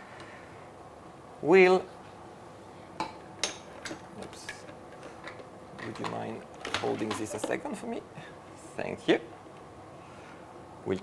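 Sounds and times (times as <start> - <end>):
plastic parts clicking and knocking: 3.8 - 7.6.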